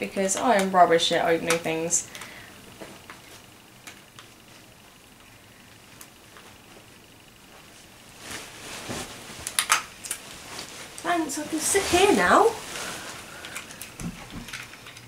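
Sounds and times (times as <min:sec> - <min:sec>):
sharp clicks and snaps: 0:09.4 - 0:10.2, 0:13.4 - 0:15.0.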